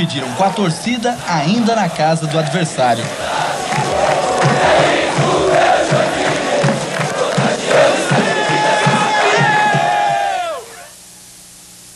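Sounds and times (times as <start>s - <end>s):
steady beat: 0.0s - 10.6s
crowd cheering and chanting: 0.0s - 10.9s.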